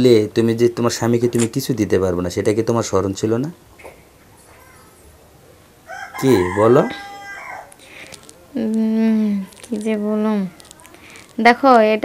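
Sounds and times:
rooster crowing: 5.8 - 7.8.

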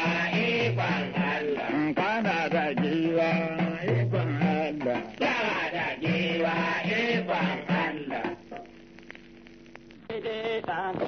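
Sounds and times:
man singing wavering vocal line: 1.4 - 6.1.

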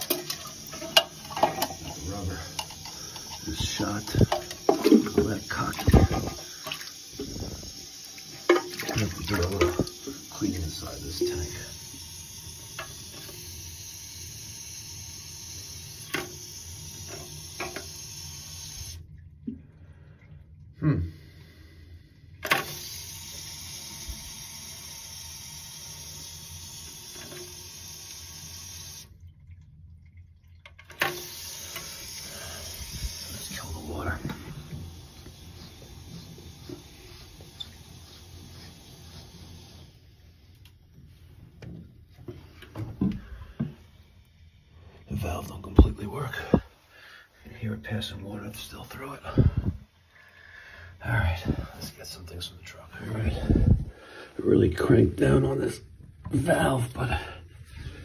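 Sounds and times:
water splashing: 0.0 - 11.7
water running into tank: 0.0 - 58.0.

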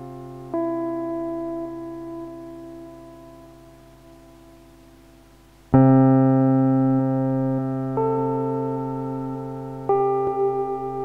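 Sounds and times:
piano chord ringing: 0.0 - 4.7, 5.8 - 11.0.

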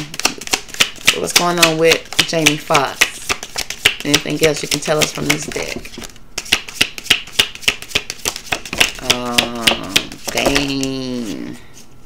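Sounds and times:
cards being shuffled: 0.0 - 11.6.

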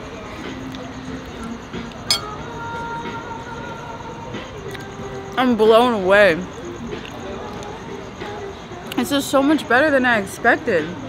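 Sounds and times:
tableware clink: 2.1 - 2.4.

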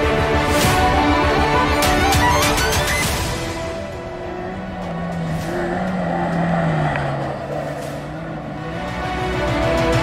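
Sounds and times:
rally car engine driving past: 4.0 - 9.1.

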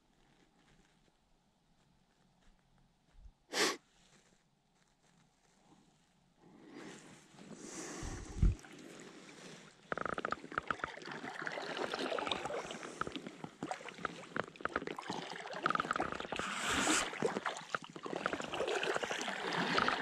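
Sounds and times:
paddle splashing in water: 7.8 - 20.0.

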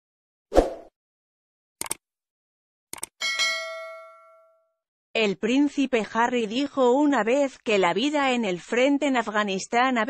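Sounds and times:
bright bell ding: 3.2 - 4.7.

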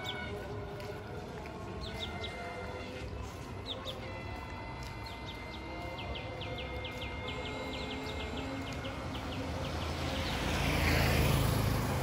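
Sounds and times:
motorcycle passing by: 7.5 - 12.0.

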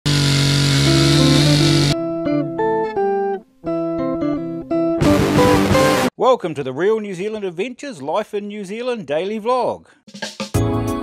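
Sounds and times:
chainsaw cutting a log: 0.1 - 2.0.

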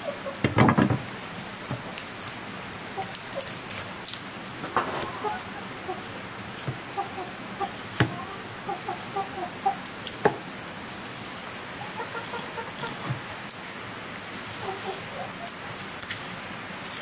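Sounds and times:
chickens clucking: 0.0 - 1.0, 2.9 - 3.9, 4.6 - 10.5, 11.7 - 13.3, 14.2 - 15.8
steady background hiss: 0.0 - 17.0.

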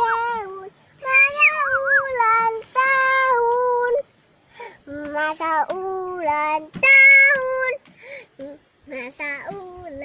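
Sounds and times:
child singing: 0.0 - 4.1, 4.8 - 10.0.

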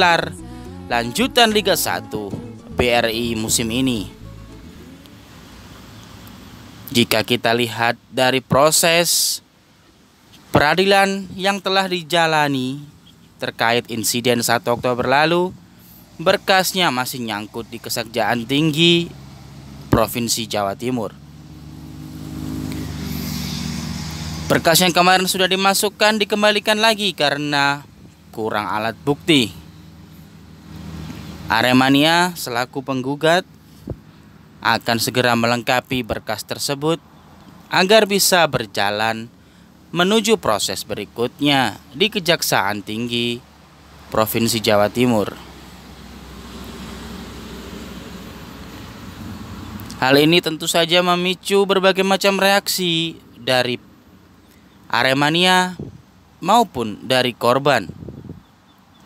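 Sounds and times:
low rumble: 0.0 - 5.3
bus engine idling: 0.0 - 21.6, 24.0 - 59.0
hiss: 23.0 - 24.4.

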